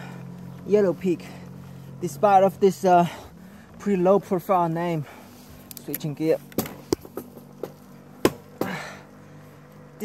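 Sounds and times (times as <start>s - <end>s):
bicycle gear shifter clicks: 5.6s - 7.1s.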